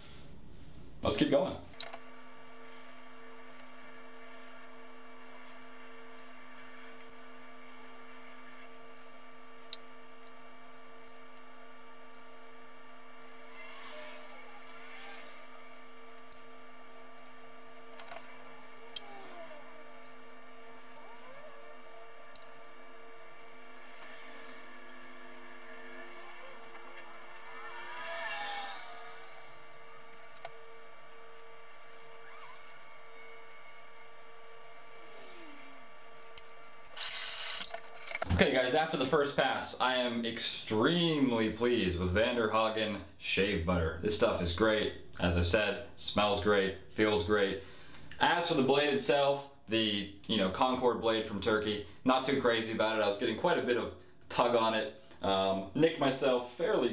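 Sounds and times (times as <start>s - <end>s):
steady low hum: 0.0s - 56.9s
razor scraping stubble: 13.2s - 16.5s, 17.2s - 38.3s.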